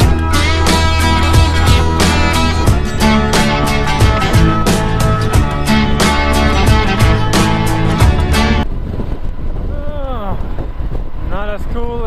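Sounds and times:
background music: 0.0 - 8.6
wind on microphone: 0.0 - 12.0
man talking: 11.3 - 12.0.

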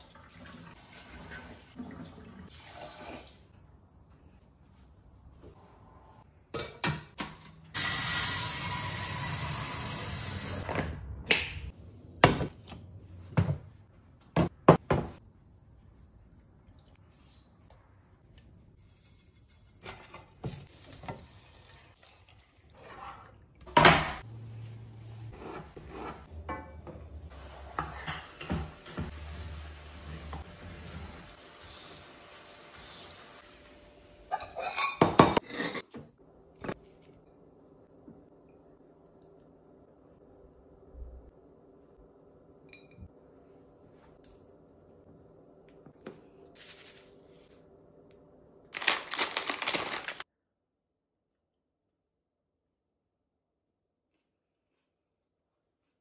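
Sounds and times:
bowl scraping on counter: 25.3 - 26.3.

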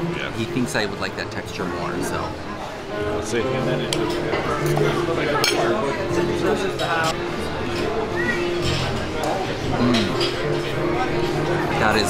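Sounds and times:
background music: 0.0 - 12.0
cutlery clinking on plate: 8.6 - 10.7.

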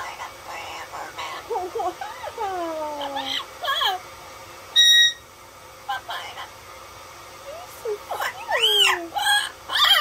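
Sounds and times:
parrot calling: 0.5 - 2.4, 3.0 - 4.0, 4.8 - 5.3, 8.2 - 10.0
shrill parrot whistle: 4.8 - 5.2.

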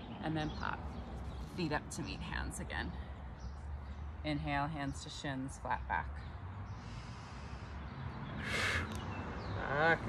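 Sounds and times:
person breathing in through nose: 6.7 - 7.8, 8.4 - 9.0.

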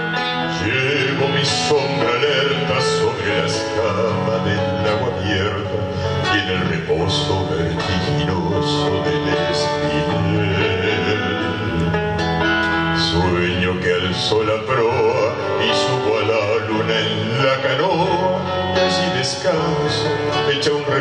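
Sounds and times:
male vocal group singing: 0.0 - 12.0, 13.0 - 21.0
acoustic guitar: 0.0 - 21.0.

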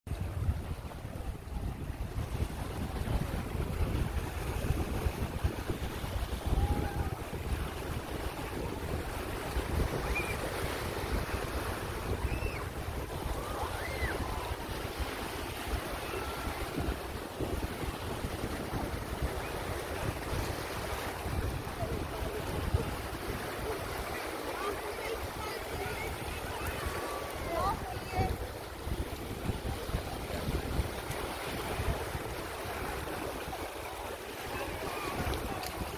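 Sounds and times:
small waves washing on beach: 0.1 - 35.9
wind buffeting microphone: 0.1 - 35.9.

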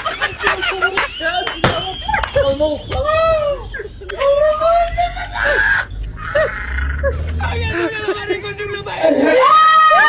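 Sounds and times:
high wailing cry: 4.2 - 8.2, 9.0 - 10.0.

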